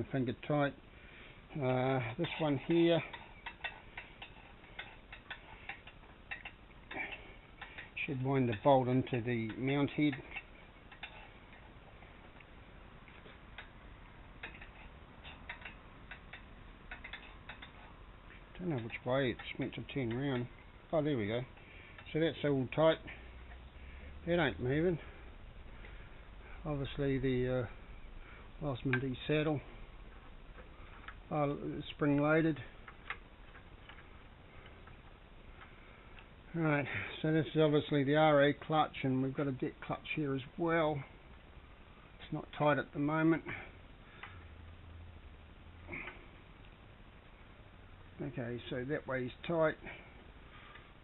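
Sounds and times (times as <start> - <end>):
low room hum: 0.0 - 51.0.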